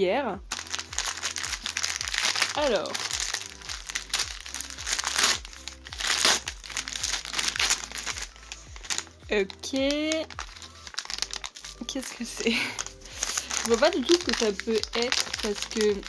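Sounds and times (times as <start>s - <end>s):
wrapping paper crinkling: 0.5s - 16.0s.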